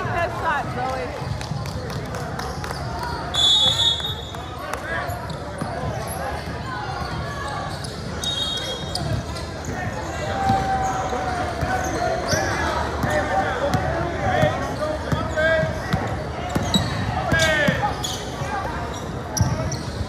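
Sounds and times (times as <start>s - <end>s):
sneaker squeaks: 2.4s - 13.0s, 14.3s - 20.0s.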